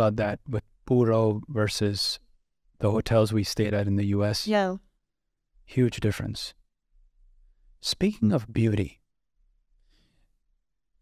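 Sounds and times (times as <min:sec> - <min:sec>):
faint short breath: 0:09.8 - 0:10.4.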